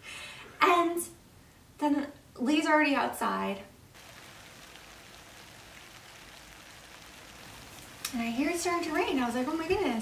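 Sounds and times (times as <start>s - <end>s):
light rain falling: 3.9s - 10.0s.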